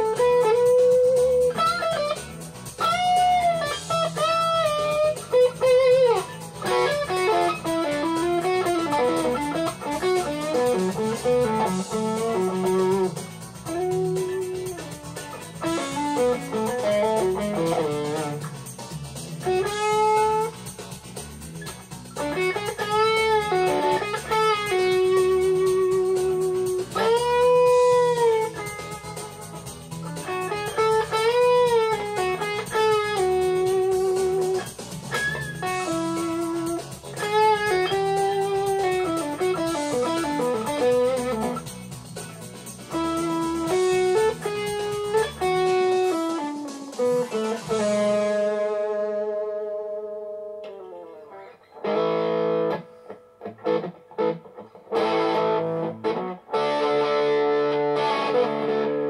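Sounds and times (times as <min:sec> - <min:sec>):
overdriven electric guitar solo: 0:00.0 - 0:18.7, 0:19.3 - 0:21.0, 0:21.6 - 0:59.0
backing track: 0:00.0 - 0:59.0.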